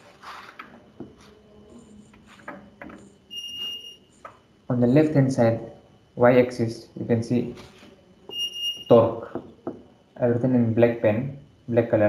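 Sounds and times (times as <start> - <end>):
high-pitched electronic beep: 3.3 - 4.0, 8.3 - 9.1.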